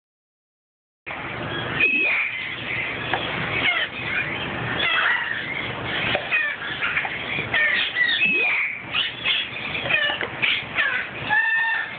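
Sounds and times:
parrot calls: 1.5 - 11.9.

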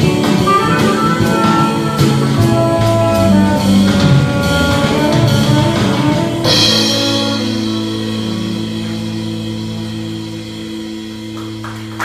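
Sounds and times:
electric bass sustaining: 0.0 - 12.0
saxophone sustained note: 0.0 - 12.0.

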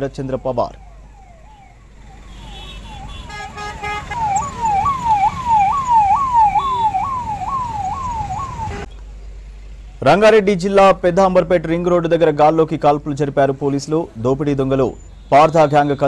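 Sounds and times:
police siren wailing: 0.0 - 8.9
low traffic rumble: 0.0 - 16.0.

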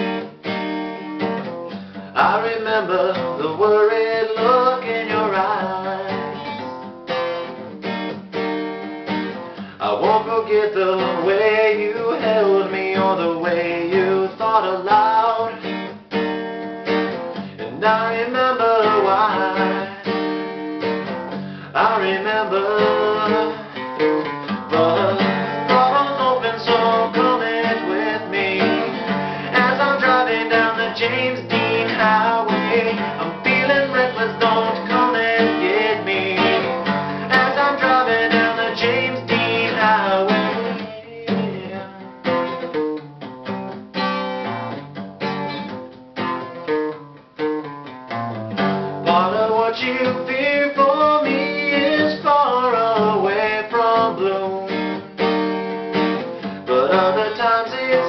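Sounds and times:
strummed acoustic guitar: 0.0 - 58.0
man singing: 2.0 - 6.8, 9.6 - 15.9, 17.5 - 20.6, 21.5 - 42.2, 49.0 - 55.2, 56.4 - 58.0.

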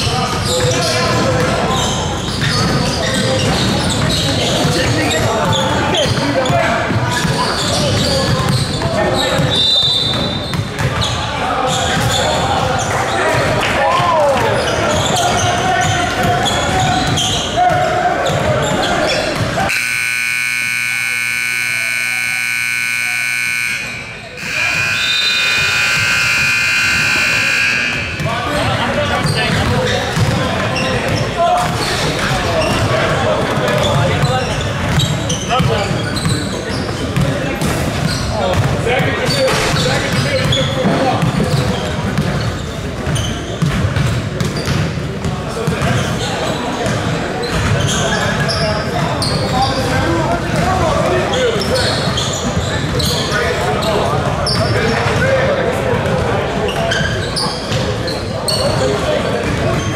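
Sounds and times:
basketball bouncing on court: 0.0 - 12.7, 13.3 - 46.2, 46.8 - 53.2, 55.9 - 57.9, 58.5 - 59.9
voices of players and spectators: 0.0 - 59.9
scoreboard horn blasts: 19.7 - 28.3.

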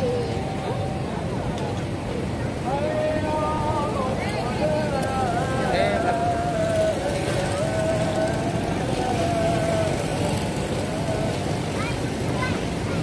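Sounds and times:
market background noise: 0.0 - 13.0.

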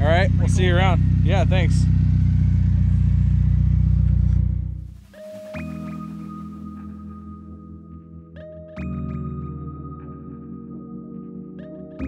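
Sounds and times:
car engine idling: 0.0 - 7.1.

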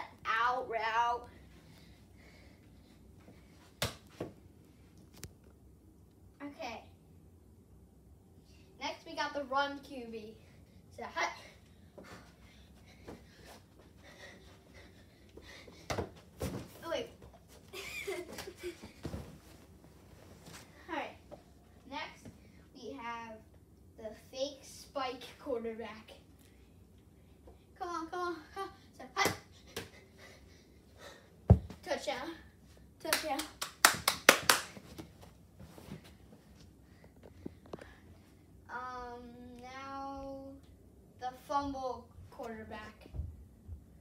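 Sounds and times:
body thumping onto carpeted floor: 31.5 - 31.8
person clapping hands: 33.1 - 34.8.

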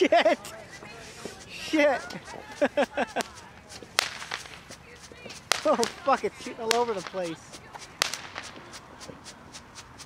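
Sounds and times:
firework crackles: 0.9 - 10.0
firework bang: 4.0 - 4.6, 5.4 - 8.7.

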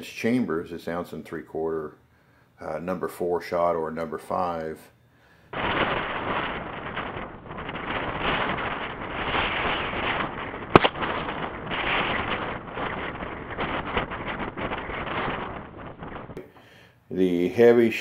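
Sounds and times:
shotgun shot: 5.5 - 15.6
wind buffeting microphone: 5.6 - 16.4.

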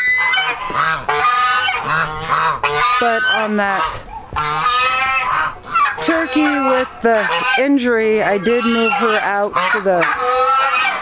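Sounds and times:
geese honking: 0.0 - 11.0.

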